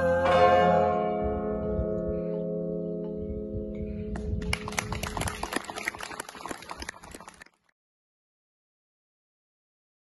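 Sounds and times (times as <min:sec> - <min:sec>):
audience applauding: 0:04.4 - 0:07.7.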